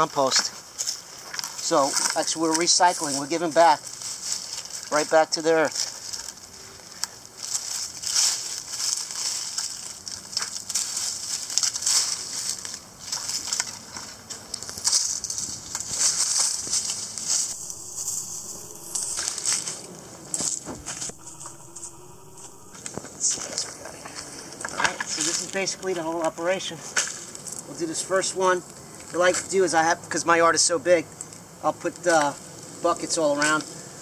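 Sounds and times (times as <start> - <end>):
dry leaves crackling and rustling: 0.4 - 28.6.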